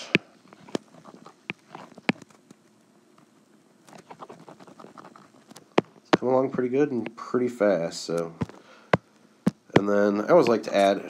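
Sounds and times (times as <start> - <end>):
stylus scratchy strokes: 3.9 - 5.6.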